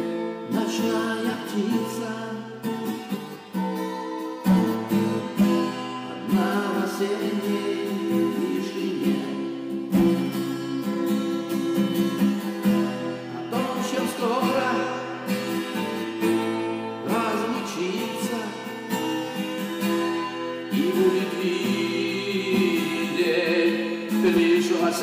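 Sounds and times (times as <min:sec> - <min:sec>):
acoustic guitar strummed: 0:00.0 - 0:25.0
man singing: 0:00.4 - 0:03.0, 0:06.0 - 0:12.1, 0:13.2 - 0:16.4, 0:17.0 - 0:19.1, 0:20.6 - 0:25.0.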